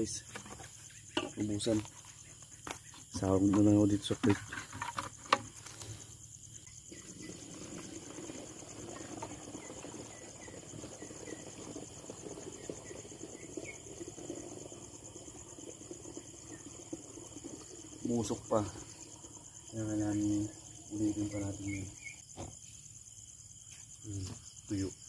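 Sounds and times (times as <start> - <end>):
crickets chirping: 0.0 - 25.0.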